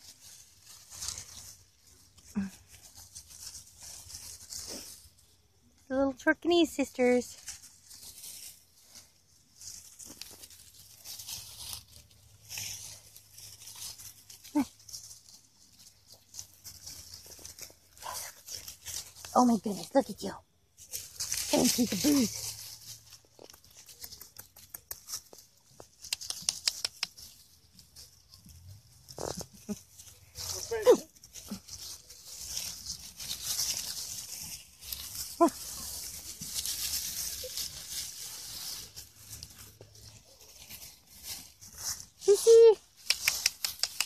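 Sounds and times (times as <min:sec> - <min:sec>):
dry leaves crackling underfoot: 0:00.0 - 0:44.0.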